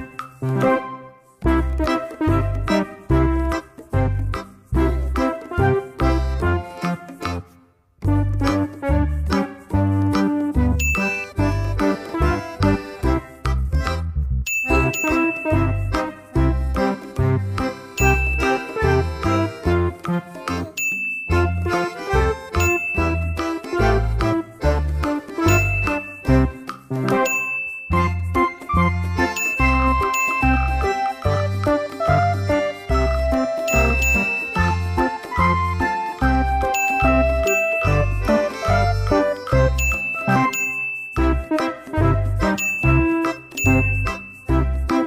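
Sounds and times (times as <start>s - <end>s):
bell-like chiming notes: 0.0s - 0.7s, 10.8s - 11.5s, 14.5s - 16.4s, 18.0s - 19.5s, 20.8s - 21.9s, 22.5s - 23.9s, 25.4s - 31.8s, 33.3s - 35.8s, 36.6s - 41.7s, 42.5s - 45.0s.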